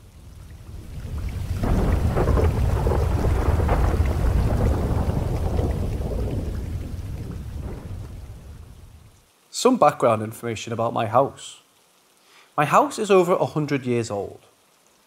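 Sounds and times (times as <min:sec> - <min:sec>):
rain: 0:00.0 - 0:15.0
rolling thunder: 0:00.3 - 0:09.1.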